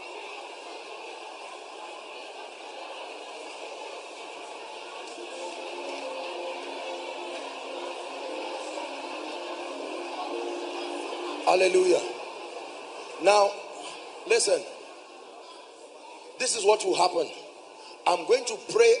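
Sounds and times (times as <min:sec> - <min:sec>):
murmur of congregation: 0:00.0 - 0:19.0
soft sustained musical notes: 0:05.1 - 0:13.8.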